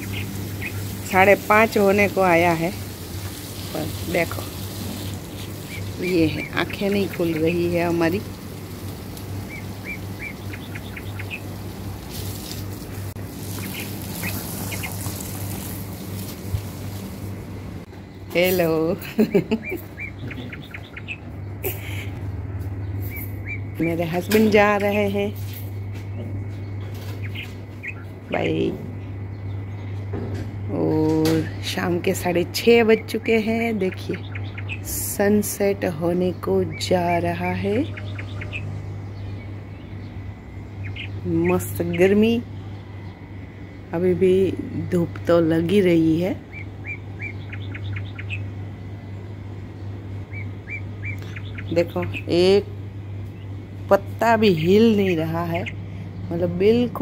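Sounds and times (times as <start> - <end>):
small bird chirping: 0.0 - 12.6, 13.4 - 15.7, 19.4 - 22.1, 33.8 - 35.0, 37.6 - 43.9, 46.4 - 56.4
steady low hum: 0.0 - 57.0.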